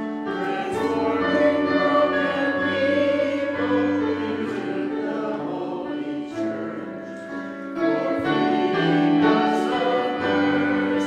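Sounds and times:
church choir singing: 0:00.0 - 0:11.0.

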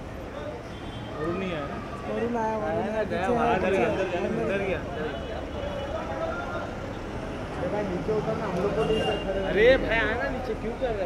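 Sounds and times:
vehicle engines rumbling: 0:00.0 - 0:11.0.

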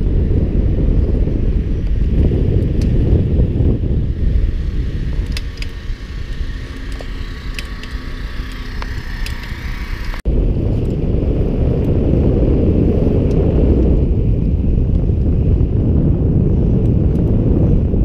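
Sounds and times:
wind rushing over microphone: 0:00.0 - 0:18.0.

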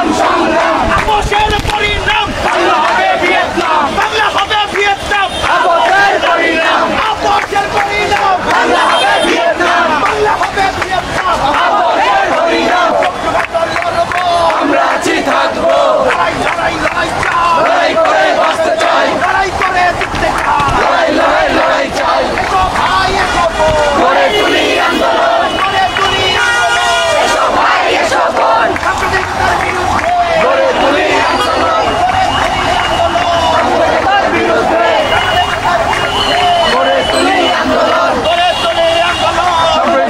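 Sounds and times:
crowd shouting slogans: 0:00.0 - 0:40.0.

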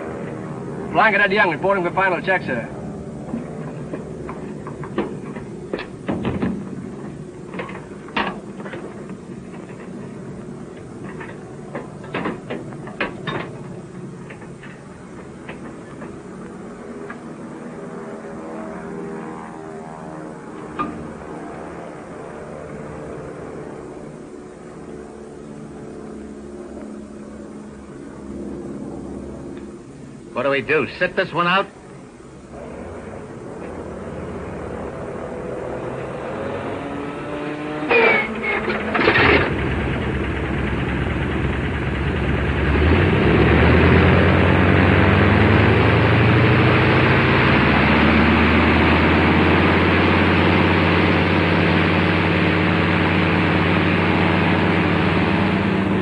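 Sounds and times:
aircraft engine running: 0:00.0 - 0:56.0.

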